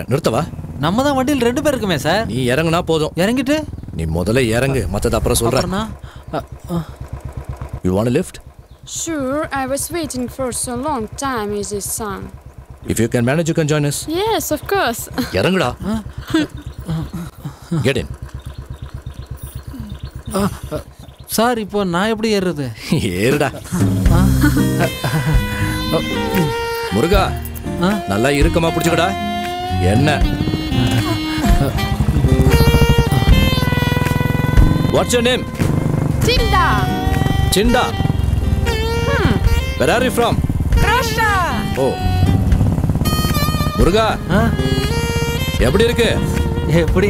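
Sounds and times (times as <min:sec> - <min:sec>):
motorcycle engine idling: 0:00.0 - 0:47.0
background music: 0:23.7 - 0:47.0.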